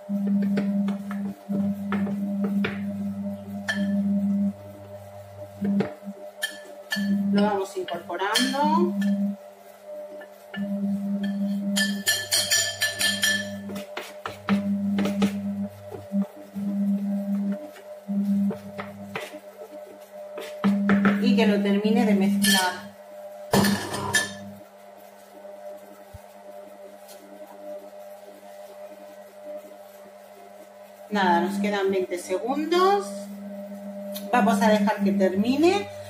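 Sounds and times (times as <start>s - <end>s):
kitchen machine motor humming: 10.5s - 22.8s.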